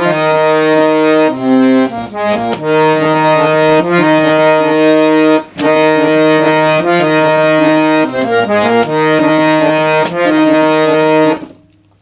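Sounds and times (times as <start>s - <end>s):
harmonium melody: 0.0s - 11.6s.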